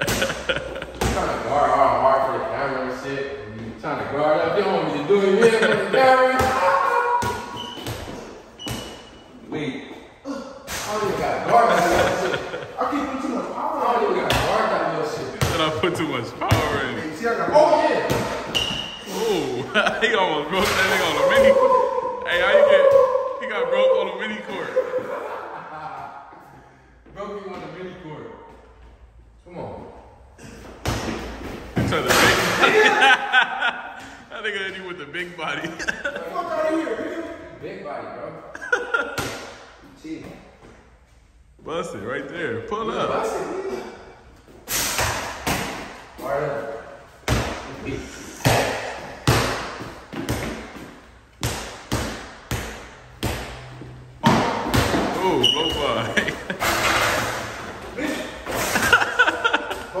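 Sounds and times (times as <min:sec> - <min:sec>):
shoe squeaks: 0:07.3 - 0:09.4, 0:18.5 - 0:19.1, 0:55.3 - 0:56.1
basketball bouncing on hard floor: 0:48.4 - 0:55.8.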